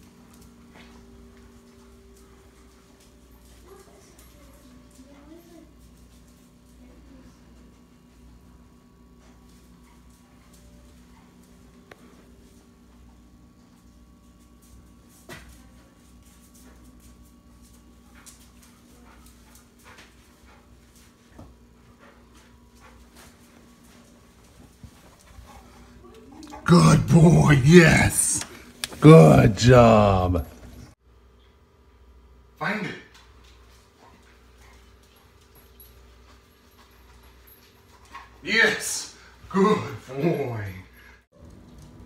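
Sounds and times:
low appliance hum: 0.0s - 42.0s.

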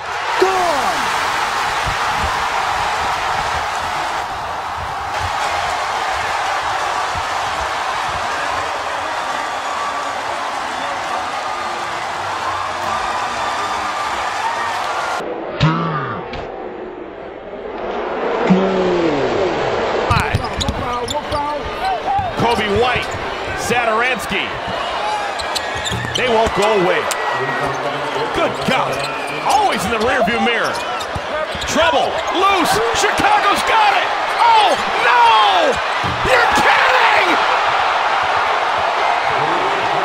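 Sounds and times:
crowd cheering: 0.0s - 15.6s, 16.2s - 40.0s.

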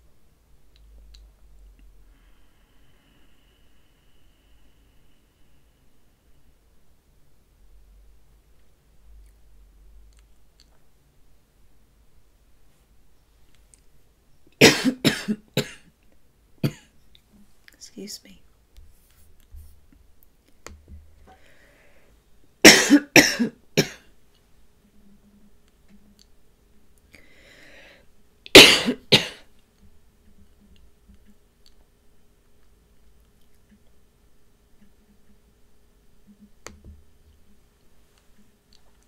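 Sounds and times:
faint breath in: 2.0s - 6.4s, 21.2s - 22.2s, 27.1s - 28.1s
woman coughing: 14.6s - 15.8s, 16.6s - 16.9s, 22.7s - 24.0s, 28.5s - 29.4s.

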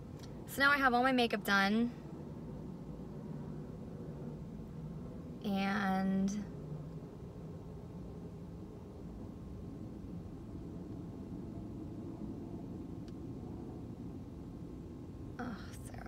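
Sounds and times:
low rumble inside car: 0.0s - 16.0s.

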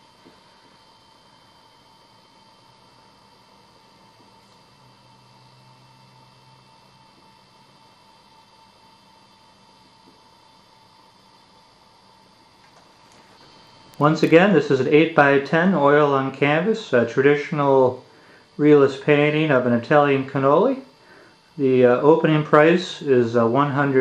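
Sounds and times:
electrical hum: 0.0s - 24.0s
low hiss: 13.0s - 24.0s.

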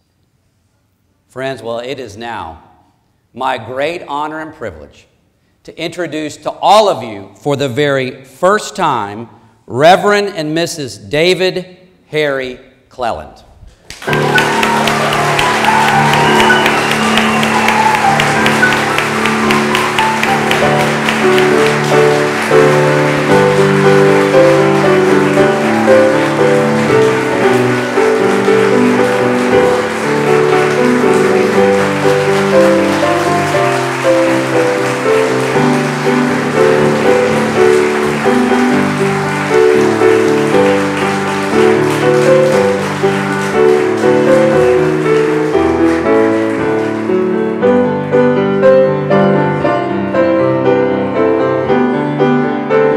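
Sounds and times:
people applauding: 13.9s - 48.7s
instrumental music with held notes: 14.0s - 52.9s.

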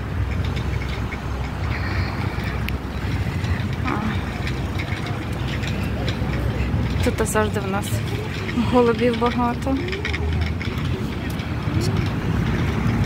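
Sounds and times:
steady low rumble: 0.0s - 13.0s
faint distant voices: 1.5s - 13.0s.

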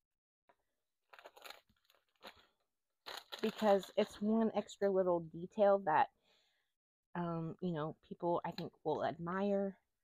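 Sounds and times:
paper rustling: 1.1s - 4.0s.

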